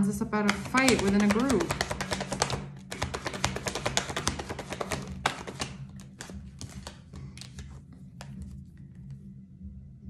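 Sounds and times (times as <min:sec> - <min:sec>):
cards shuffling: 0:00.5 - 0:09.1.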